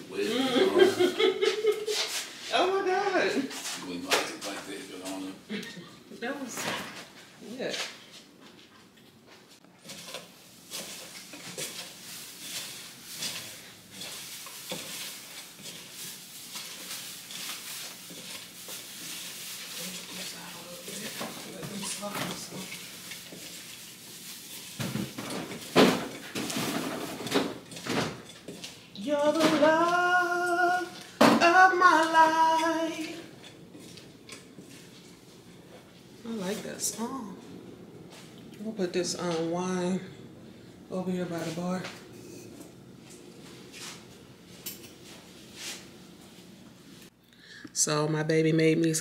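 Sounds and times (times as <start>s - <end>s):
pots and dishes clattering: 9.8s - 23.8s, 24.5s - 29.7s.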